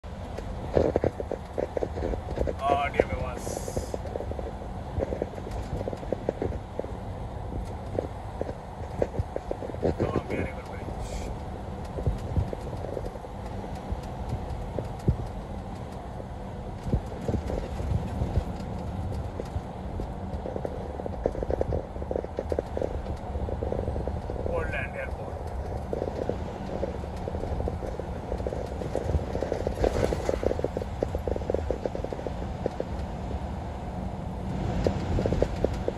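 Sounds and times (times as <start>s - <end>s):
engine and tyres on wet road: 0.0s - 35.9s
person speaking: 2.6s - 3.9s.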